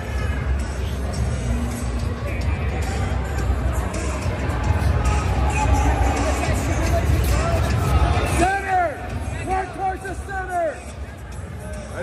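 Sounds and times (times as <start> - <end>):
background music: 0.0 - 12.0
crowd chatter: 0.0 - 12.0.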